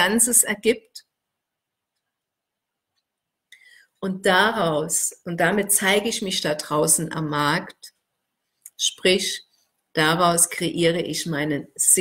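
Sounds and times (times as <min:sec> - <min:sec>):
woman breathing: 0:03.5 - 0:04.0.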